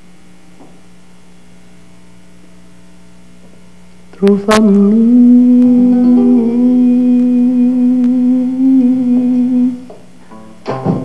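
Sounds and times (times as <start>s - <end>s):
man holding long vocal note: 4.2s - 10.0s.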